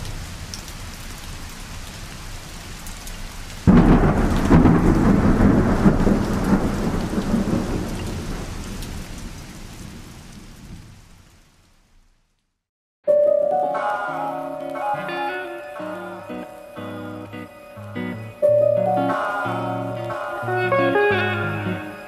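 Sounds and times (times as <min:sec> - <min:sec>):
rain hissing: 0:00.0 - 0:12.4, 0:13.8 - 0:22.0
thunder rolling: 0:03.7 - 0:10.1.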